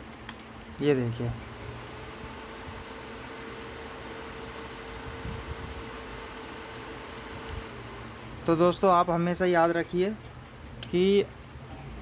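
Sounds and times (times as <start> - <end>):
cooling fan whirring: 0.0 - 12.0
faint steady hum: 0.0 - 12.0.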